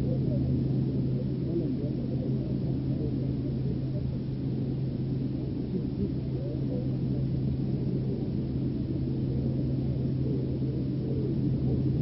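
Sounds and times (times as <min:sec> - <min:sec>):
low-pitched hum: 0:00.0 - 0:12.0
muffled rumble: 0:00.0 - 0:12.0.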